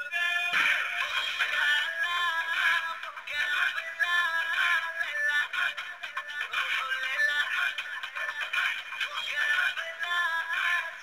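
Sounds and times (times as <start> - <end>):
thin dance song: 0.1 - 11.0.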